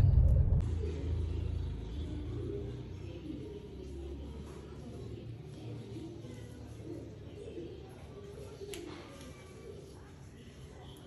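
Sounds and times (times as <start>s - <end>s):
car rumbling on the move: 0.0s - 1.8s.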